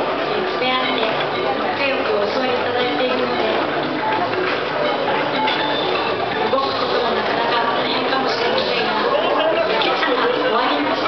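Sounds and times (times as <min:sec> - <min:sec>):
many overlapping voices: 0:00.0 - 0:11.0.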